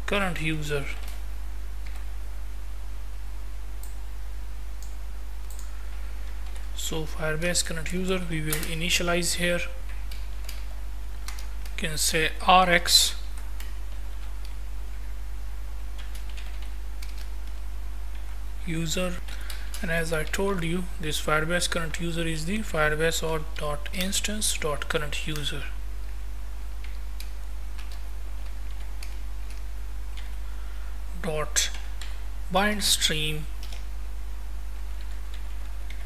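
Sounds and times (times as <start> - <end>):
low electrical hum: 0.0 - 36.0.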